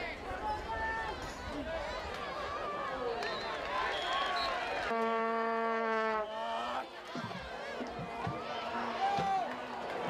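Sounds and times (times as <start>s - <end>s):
crowd chatter: 0.0s - 10.0s
low horn blast: 4.9s - 6.4s.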